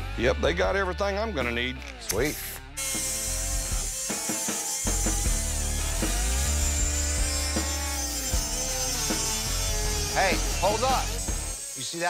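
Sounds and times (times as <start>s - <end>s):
background music: 0.0s - 12.0s
cut-off wheel grinding steel: 2.1s - 12.0s.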